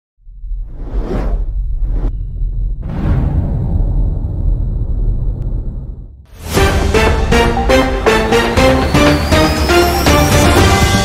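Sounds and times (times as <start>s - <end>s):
deep low rumble: 0.4s - 6.3s.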